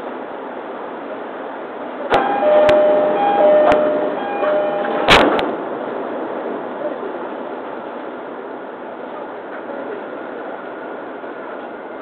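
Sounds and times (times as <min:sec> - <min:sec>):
two-note door chime: 0:02.1 - 0:05.3
train doors shutting thump: 0:02.1 - 0:05.6.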